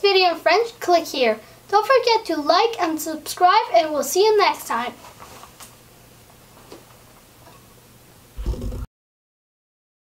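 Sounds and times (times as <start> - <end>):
faint background hiss: 0.0 - 8.9.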